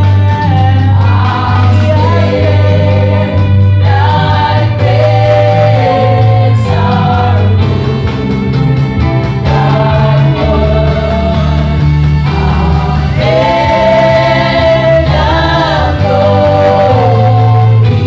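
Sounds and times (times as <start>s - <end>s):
group singing a hymn: 0.0s - 18.0s
instrumental backing with bass: 0.0s - 18.0s.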